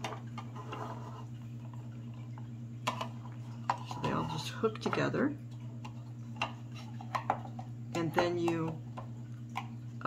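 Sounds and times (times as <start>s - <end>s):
plastic cups clicking and tapping: 0.0s - 5.2s, 5.8s - 9.7s
steady low hum: 0.0s - 10.0s.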